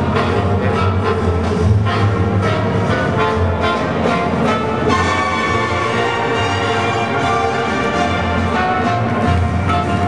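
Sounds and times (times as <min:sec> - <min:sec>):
orchestral music over loudspeakers: 0:00.0 - 0:10.0.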